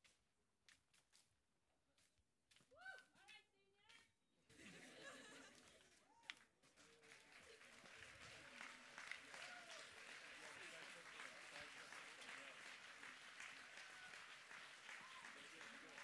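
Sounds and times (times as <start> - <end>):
crowd clapping: 4.6 - 16.0
faint voice: 6.1 - 16.0
crowd chattering: 7.0 - 16.0.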